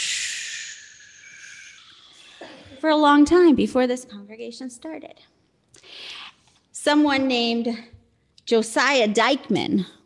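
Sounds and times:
woman blowing breathy whoosh: 0.0s - 2.5s.

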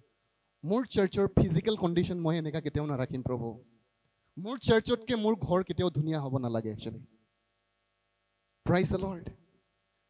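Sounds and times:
faint electrical hum: 0.0s - 10.0s
man speaking into a microphone: 0.6s - 3.6s, 4.4s - 7.1s, 8.6s - 9.4s.

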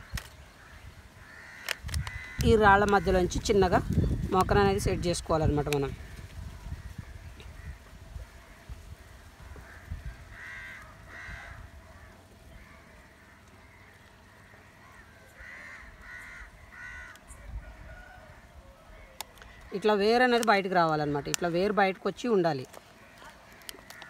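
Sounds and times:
bird calling: 5.7s - 24.0s.

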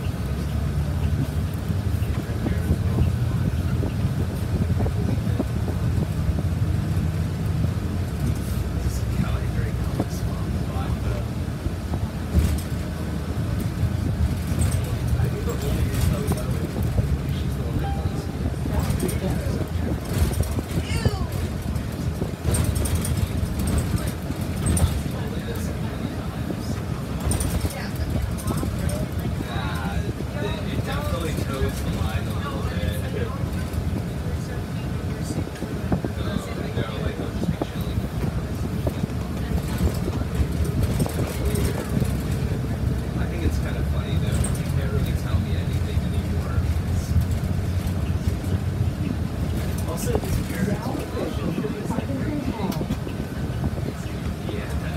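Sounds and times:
bus engine rumble: 0.0s - 54.9s
road noise: 0.0s - 54.9s.

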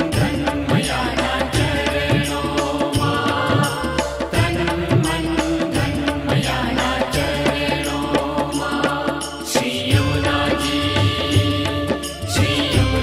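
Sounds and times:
devotional song with percussion: 0.0s - 13.0s.

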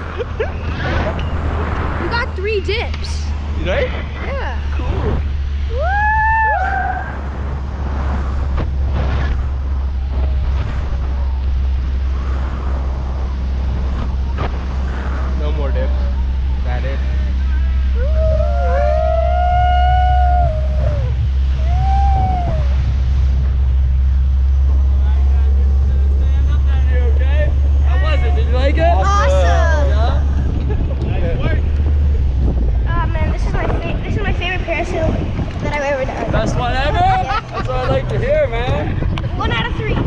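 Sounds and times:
motorboat engine: 0.0s - 40.0s
wind buffeting microphone: 0.0s - 40.0s
indistinct voices: 15.3s - 40.0s.

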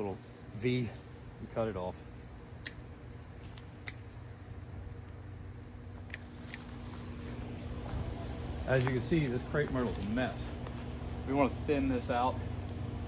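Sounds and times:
steady low hum: 0.0s - 13.0s
hand pruners snipping stems: 3.4s - 4.1s, 6.1s - 7.4s.

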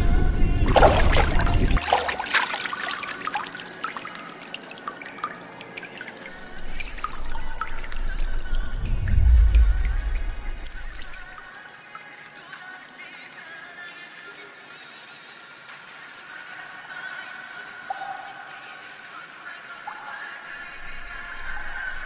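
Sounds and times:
background music: 0.0s - 22.0s
water splashing and trickling: 0.0s - 22.0s
deep low rumble: 6.4s - 11.4s.

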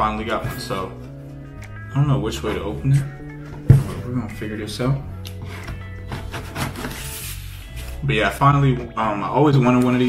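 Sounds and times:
background music: 0.0s - 10.0s
cardboard package rustling: 5.5s - 8.0s.

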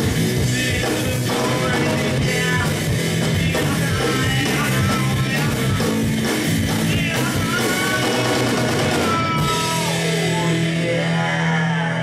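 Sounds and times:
rock band playing live: 0.0s - 12.0s
guitar sliding down in pitch: 7.2s - 12.0s.

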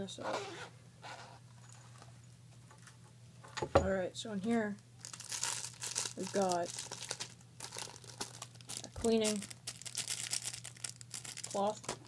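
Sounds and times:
low steady hum: 0.0s - 12.0s
person speaking: 6.1s - 6.8s, 8.7s - 9.5s, 11.4s - 11.9s.

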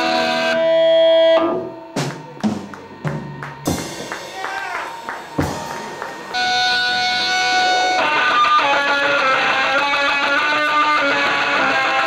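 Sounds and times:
electric guitar riff: 0.0s - 12.0s
drum hit: 5.3s - 5.9s.

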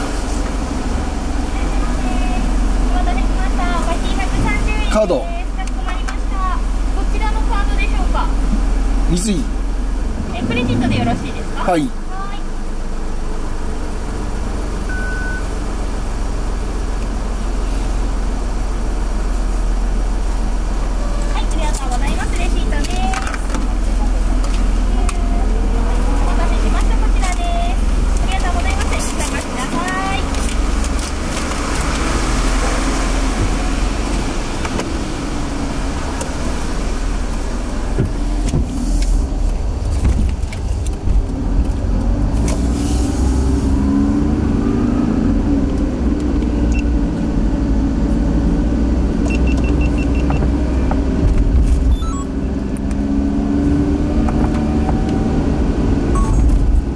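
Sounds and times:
car engine and road rumble: 0.0s - 56.9s.

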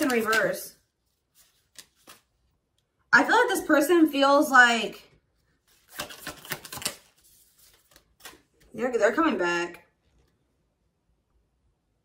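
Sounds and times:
cards clicking: 0.0s - 0.6s, 5.7s - 8.5s.

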